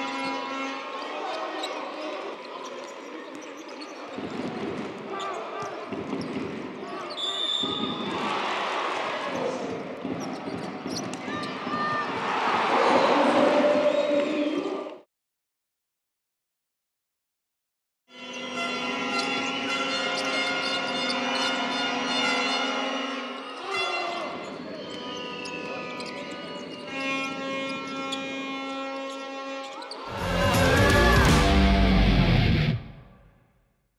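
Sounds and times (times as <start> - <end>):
sneakers squeaking: 0.0 - 8.3, 10.0 - 12.2, 18.4 - 30.2
arena crowd voices: 0.0 - 10.4, 11.1 - 15.0, 29.8 - 33.0
referee's whistle: 7.1 - 8.1.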